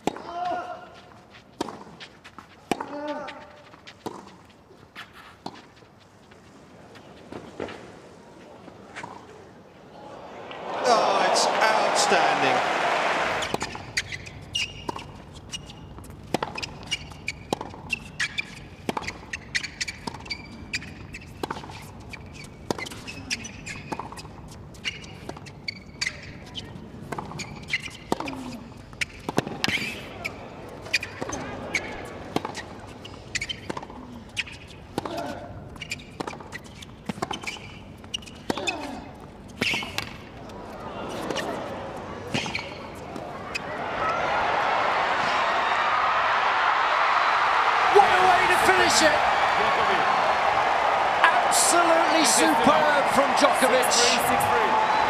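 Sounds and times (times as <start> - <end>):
tennis ball bouncing: 0.0 - 0.6, 1.6 - 4.6, 13.2 - 26.4, 27.0 - 30.1
racket hitting tennis ball: 1.6 - 2.1, 2.7 - 3.3, 16.2 - 20.3
crowd hum: 9.8 - 13.7, 40.4 - 55.0
players grunting: 10.0 - 13.4, 47.6 - 55.0.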